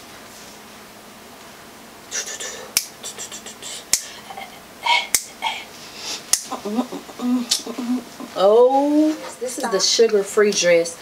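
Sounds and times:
person humming or speaking: 2.1 - 5.7, 6.4 - 8.1
breathy hissing: 2.1 - 6.4.

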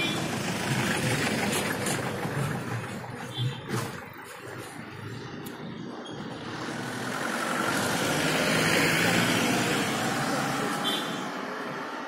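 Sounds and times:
vehicle driving past: 6.3 - 12.0.

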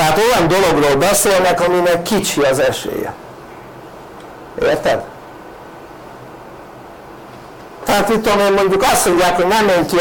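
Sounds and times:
man talking: 0.0 - 3.2, 4.6 - 5.1, 7.8 - 10.0
faint room noise with hiss: 0.0 - 10.0.

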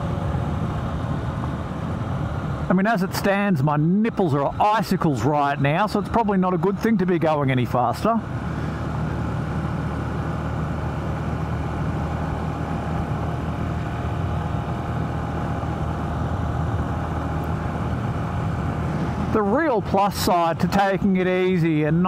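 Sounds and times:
motorcycle engine running steadily: 0.0 - 22.0.

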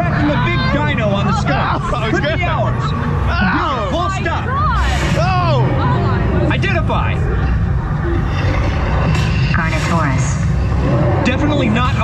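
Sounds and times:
ride vehicle rumble: 0.0 - 12.0
voices: 0.0 - 12.0.

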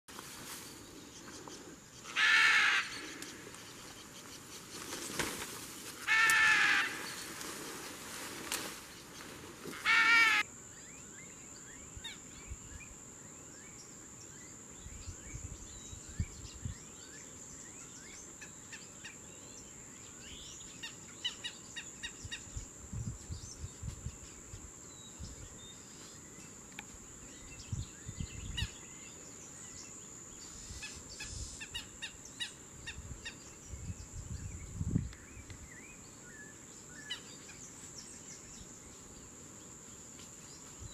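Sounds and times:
harsh bird calls: 1.2 - 5.2, 9.7 - 10.5.

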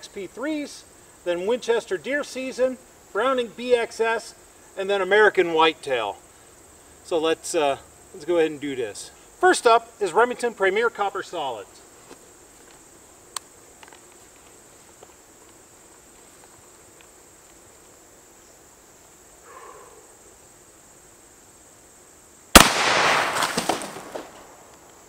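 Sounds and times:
faint outdoor background: 0.0 - 25.0
shotgun shot with echo: 22.6 - 24.3.

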